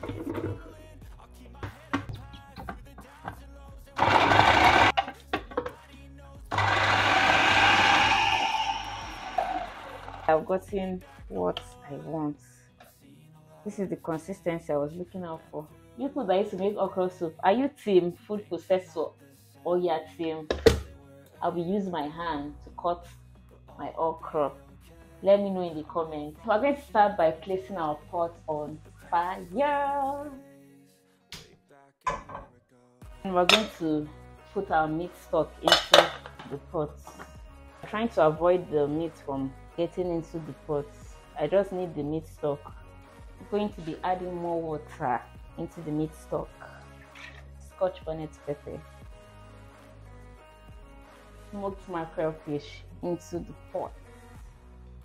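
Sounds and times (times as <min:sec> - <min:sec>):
quiet background music: 0:00.0 - 0:55.0
electric food processor chopping: 0:04.0 - 0:05.1, 0:06.5 - 0:10.3
pan knocking on metal grate: 0:32.1 - 0:32.5.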